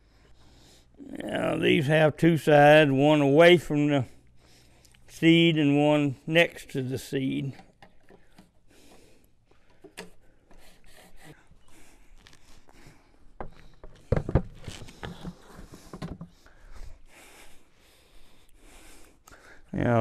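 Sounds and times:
clicks and knocks of planter parts: 13.4 - 16.3.

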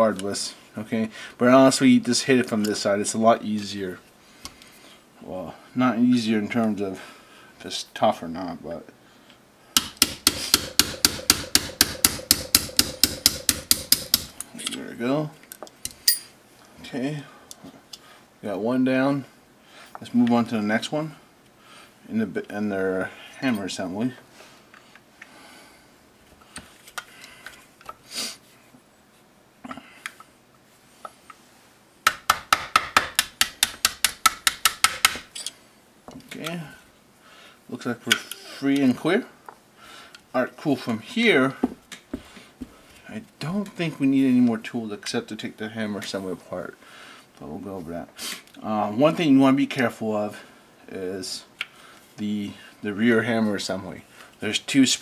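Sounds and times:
small hammer tapping pin punch: 9.8 - 14.3, 32.1 - 35.2.

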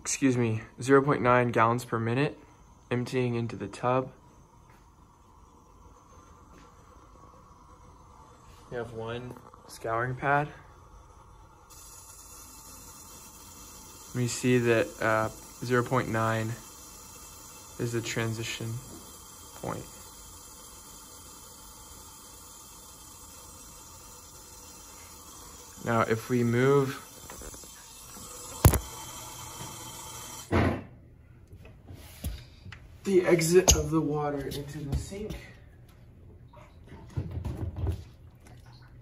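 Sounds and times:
faint hiss: 0.0 - 30.5.

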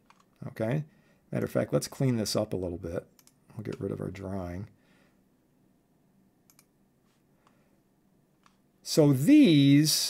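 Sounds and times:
computer mouse clicks: 0.0 - 0.4, 3.2 - 3.9, 6.5 - 6.7, 8.4 - 8.6.

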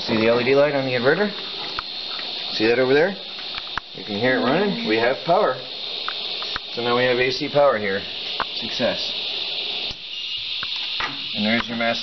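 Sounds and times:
power inverter high hiss: 0.0 - 12.0.

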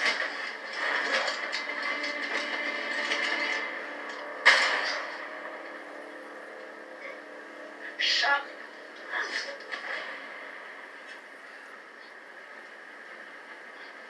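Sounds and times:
fight bashing noises: 0.0 - 5.8
loud gunshot: 4.4 - 5.3.

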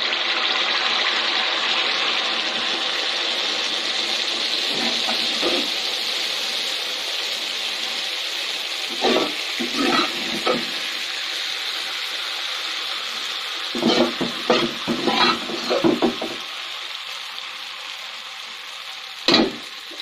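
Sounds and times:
batter cake deep-frying in oil: 0.0 - 20.0.

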